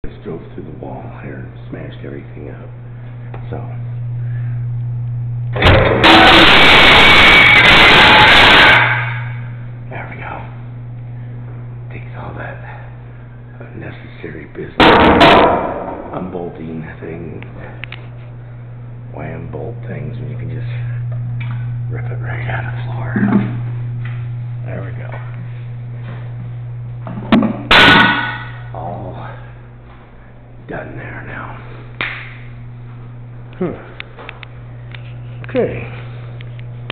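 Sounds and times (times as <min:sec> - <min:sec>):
low hum: 0:00.0 - 0:36.9
loud ringing bang: 0:05.6 - 0:09.5, 0:14.8 - 0:16.3, 0:27.3 - 0:28.8.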